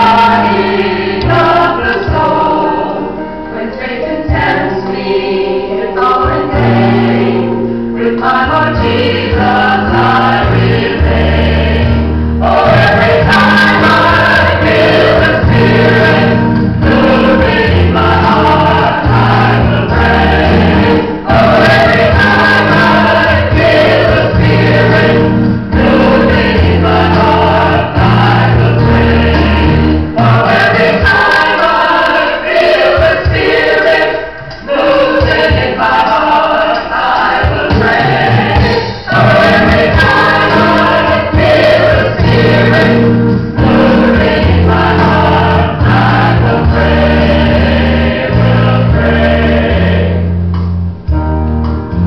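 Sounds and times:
choir singing worship song: 0.0 - 50.4
deep bass notes: 8.5 - 31.2, 37.8 - 52.0.

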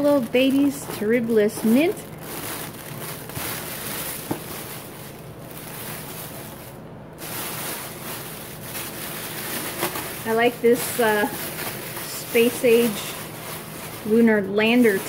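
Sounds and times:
foil sheet rustling and crinkling: 0.0 - 15.0.

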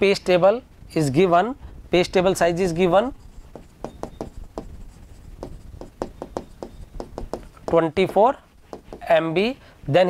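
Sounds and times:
stylus tapping and scratching on screen: 2.4 - 9.6.

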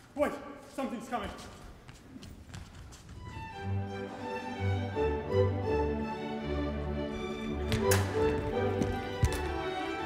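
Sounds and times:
man speaking: 0.0 - 1.6.

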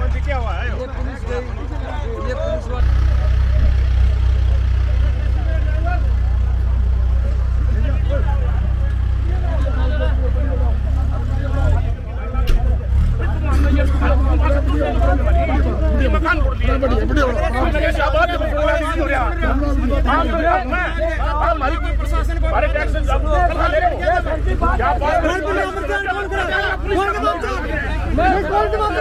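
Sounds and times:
crowd of men talking: 0.0 - 29.0.

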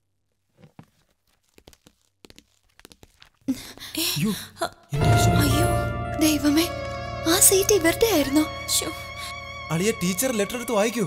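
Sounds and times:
paper rustling: 0.3 - 3.5.

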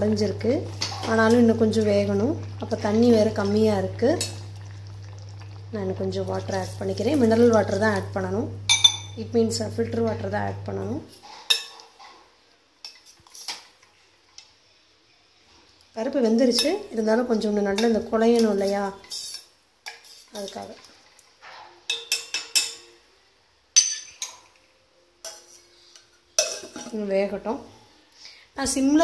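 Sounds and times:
metal ladle clinking on pot: 8.7 - 9.2, 21.9 - 23.0, 23.8 - 24.5, 26.4 - 27.0.

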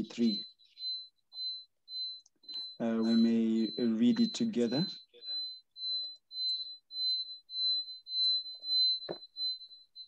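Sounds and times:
high-pitched electronic beep: 0.0 - 9.8.

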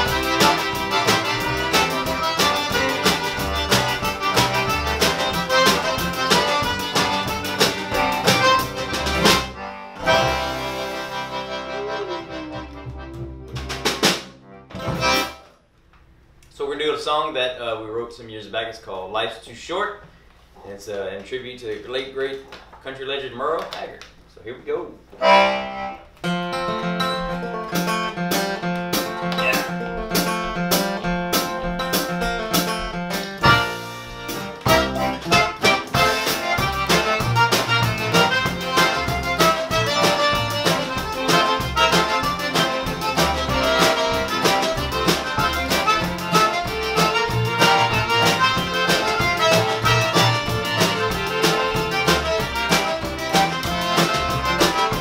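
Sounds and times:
drums on dance beat: 0.0 - 9.5, 12.9 - 15.3, 28.3 - 55.0
fiddle: 0.0 - 13.8, 29.6 - 55.0
button accordion: 0.0 - 15.5, 25.2 - 26.1, 29.3 - 55.0
upright bass: 0.0 - 15.5, 24.7 - 55.0
acoustic guitar: 0.0 - 15.7, 25.2 - 55.0.

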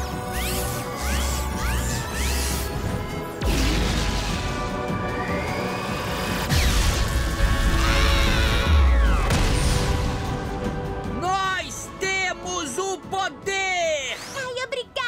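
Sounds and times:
dramatic music score: 0.0 - 15.0.

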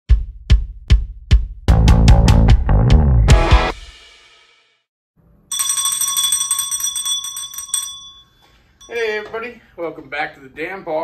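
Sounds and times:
small metal bell rung rapidly: 5.5 - 9.2.

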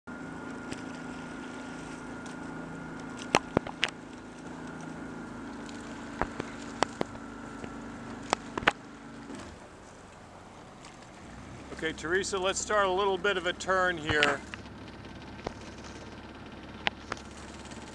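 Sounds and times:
motorboat engine humming: 0.1 - 17.9.

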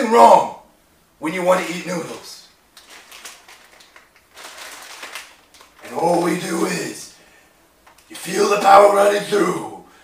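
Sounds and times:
plastic packet crinkling: 2.7 - 6.0.

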